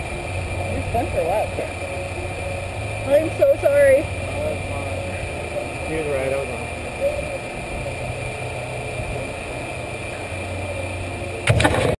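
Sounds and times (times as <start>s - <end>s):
high steady whine: 0.0s - 12.0s
low machine hum: 0.0s - 12.0s.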